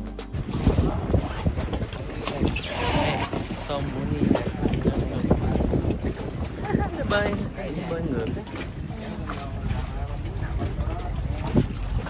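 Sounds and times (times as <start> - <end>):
background music: 0.0 - 5.4
wind buffeting microphone: 0.3 - 12.0.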